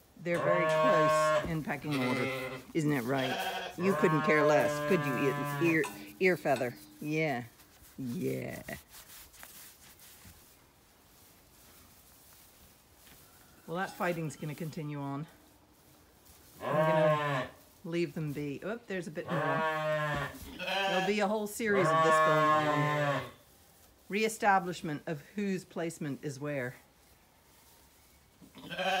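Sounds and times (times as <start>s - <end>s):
sheep bleating: 0.3s - 6.6s, 16.6s - 17.5s, 19.2s - 23.4s, 28.6s - 29.0s.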